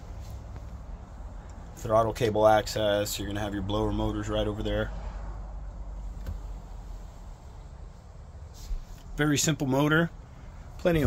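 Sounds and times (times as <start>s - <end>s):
low background rumble: 0.0s - 11.0s
faint hiss: 6.1s - 11.0s.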